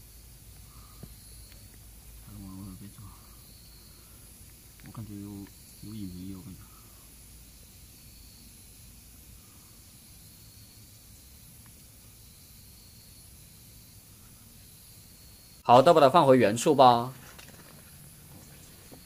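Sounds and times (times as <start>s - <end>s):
high insect chirp: 0.0s - 19.0s
steady low hiss: 0.0s - 19.0s
low voiced hums: 2.2s - 3.4s.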